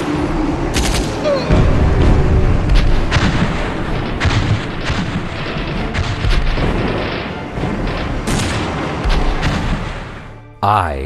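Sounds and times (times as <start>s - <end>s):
loud gunshots: 2.7s - 10.3s.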